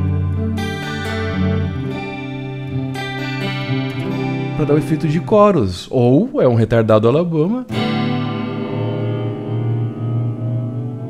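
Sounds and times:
electric guitar chord with reverb: 0.0s - 5.7s, 7.7s - 11.0s.

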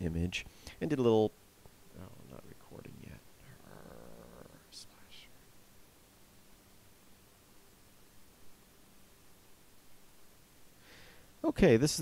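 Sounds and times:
soft whispered hisses: 0.1s - 5.9s
man's voice: 11.4s - 12.0s.

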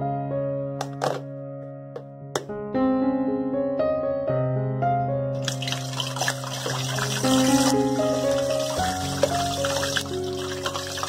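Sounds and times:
piano music: 0.0s - 11.0s
food deep-frying in hot oil: 5.4s - 11.0s.

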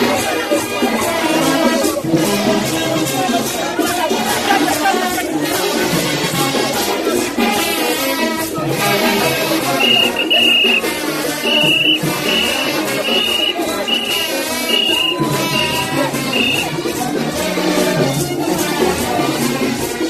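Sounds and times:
crowd: 0.0s - 20.0s
street procession music: 0.0s - 20.0s
high-pitched short blasts: 9.7s - 16.7s.

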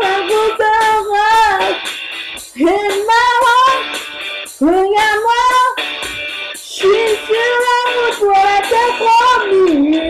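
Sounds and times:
karaoke backing music: 0.0s - 10.0s
person singing karaoke: 0.0s - 10.0s.

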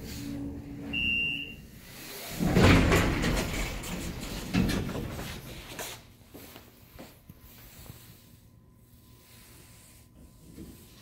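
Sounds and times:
elevator car humming: 0.0s - 5.6s
electronic beep: 0.9s - 1.6s.

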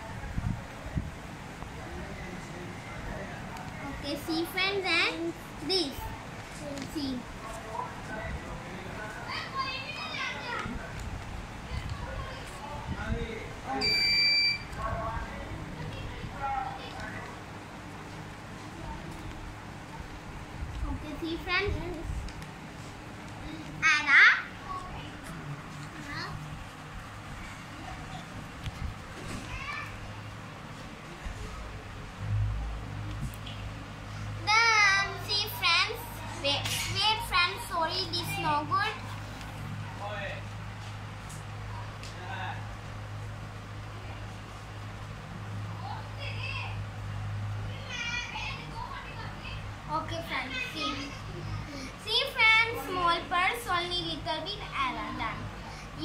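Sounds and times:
faint children's voices: 0.0s - 40.0s, 45.5s - 56.0s
young child's voice: 4.0s - 7.3s, 20.8s - 22.2s, 23.5s - 25.3s, 26.0s - 26.4s, 29.3s - 30.2s, 34.4s - 39.1s, 47.7s - 56.0s
high-pitched electronic beep: 13.8s - 14.7s
steady low hum: 30.0s - 47.6s.

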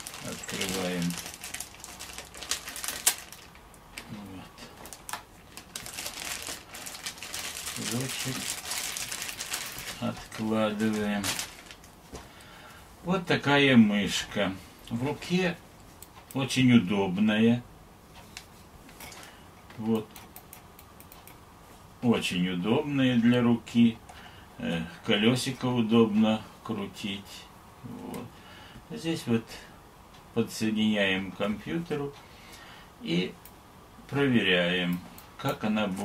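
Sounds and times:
plastic bag crinkling: 0.0s - 12.0s
computer mouse clicks: 19.9s - 21.4s.

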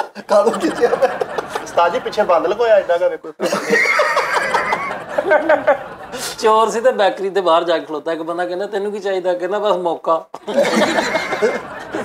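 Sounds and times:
men laughing: 0.0s - 6.4s, 10.4s - 12.0s.

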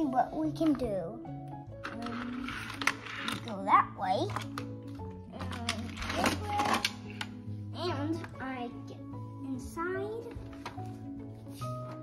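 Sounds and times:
child's voice: 0.0s - 4.5s, 5.3s - 7.0s, 7.7s - 10.4s
background music: 0.0s - 12.0s.

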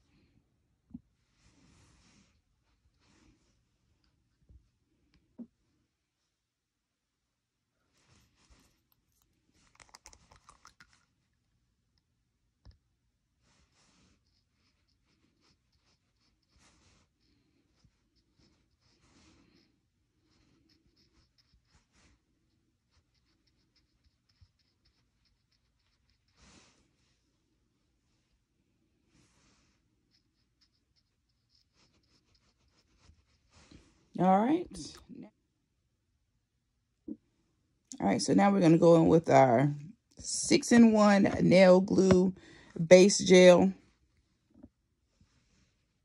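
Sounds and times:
light scratching strokes: 1.2s - 3.7s, 7.9s - 11.1s, 13.4s - 27.4s, 29.0s - 35.0s
nail tool scratching fingernails: 8.6s - 11.0s, 22.9s - 26.4s, 30.1s - 33.5s.

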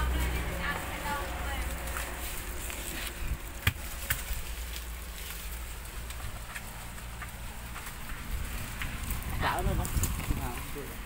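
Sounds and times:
leaves rustling and crackling: 0.0s - 11.0s
low rumble on microphone: 0.0s - 11.0s.

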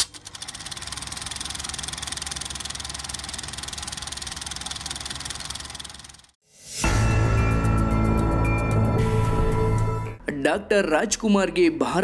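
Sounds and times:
film projector clatter: 0.0s - 6.4s.

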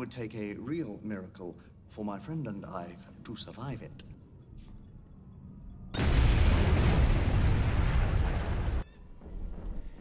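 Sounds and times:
bomb explosion: 6.0s - 8.8s.

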